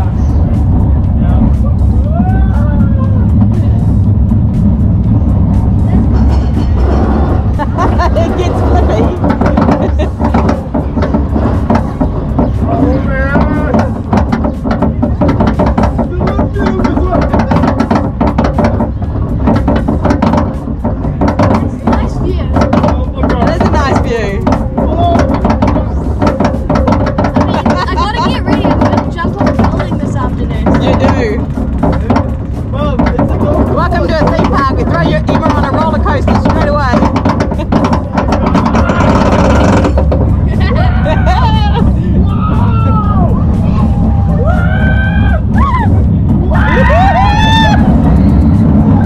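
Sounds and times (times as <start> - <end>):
thrill ride rumble and rushing air: 0.0 - 49.0
riders shrieking and yelling: 38.6 - 40.0, 40.8 - 49.0.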